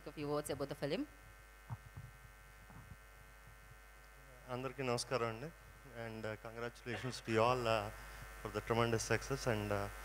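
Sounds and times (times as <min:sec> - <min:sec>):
faint electrical mains hum: 0:00.0 - 0:10.0
soft low thumps: 0:00.4 - 0:04.0.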